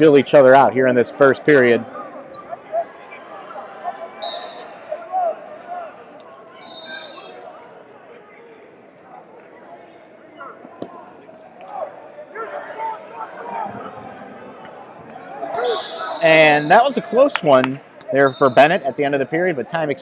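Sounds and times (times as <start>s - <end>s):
coaches and spectators calling out: 0.0s - 20.0s.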